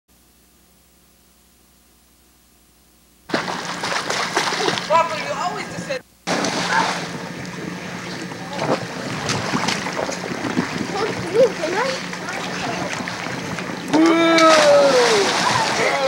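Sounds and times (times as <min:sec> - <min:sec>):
water splashing in pool: 0:03.3 - 0:16.0
children calling out: 0:13.9 - 0:16.0.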